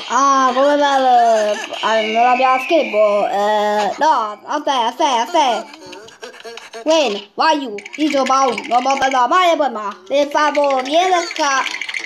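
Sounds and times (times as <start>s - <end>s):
squeaky cartoon gibberish voices: 0.0s - 12.0s.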